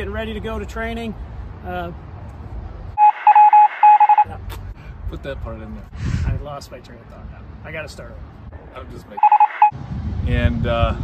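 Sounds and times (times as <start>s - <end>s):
censor bleep: 3.0s - 4.3s, 9.2s - 9.8s.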